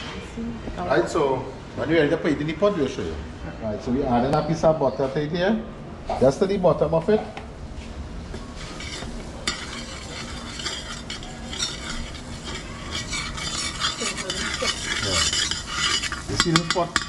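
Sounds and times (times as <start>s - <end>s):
butter sizzling in a pot: 8.5s - 17.0s
metal spoon scraping a pot: 8.6s - 17.0s.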